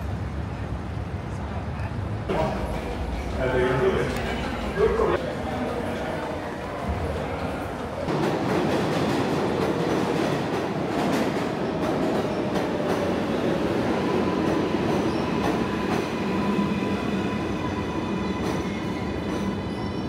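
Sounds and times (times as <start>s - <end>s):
subway train rumble: 0.0s - 20.0s.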